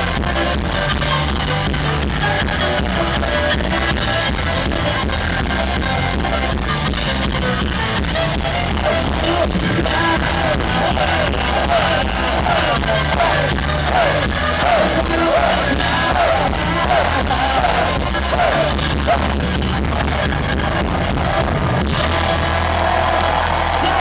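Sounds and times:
accordion: 0:00.0 - 0:23.0
bass: 0:00.0 - 0:24.0
drums: 0:00.0 - 0:24.0
shouted vocals: 0:08.6 - 0:24.0.

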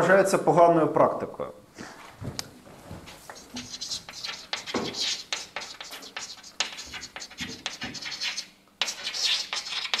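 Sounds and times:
chalk scratching on chalkboard: 0:03.1 - 0:10.0.

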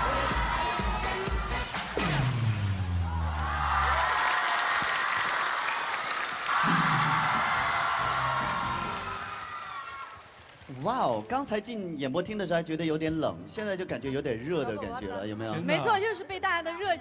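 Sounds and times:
stage music with falling sweep: 0:00.0 - 0:04.0
audience cheering and applauding: 0:00.0 - 0:11.3.

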